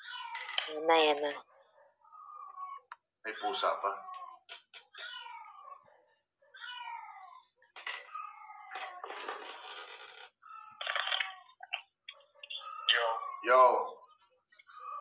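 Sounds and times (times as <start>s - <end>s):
cat meowing: 2.0s - 11.7s, 12.6s - 14.1s
noise: 7.8s - 15.0s.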